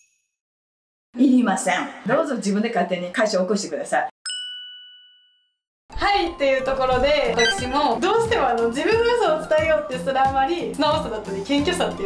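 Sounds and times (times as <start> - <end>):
bell-like ding: 4.2 - 5.6.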